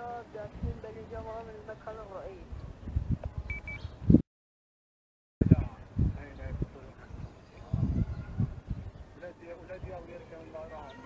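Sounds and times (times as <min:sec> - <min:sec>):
short high beeps: 0:03.5 - 0:03.8.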